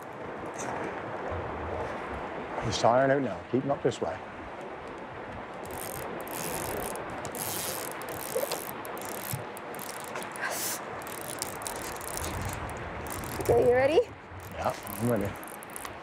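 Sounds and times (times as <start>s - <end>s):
fishing reel drag ratcheting: 5.6s - 16.0s.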